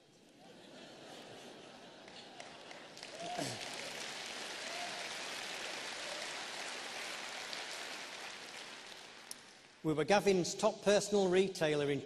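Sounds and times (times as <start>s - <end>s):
audience applauding: 1.9s - 9.8s.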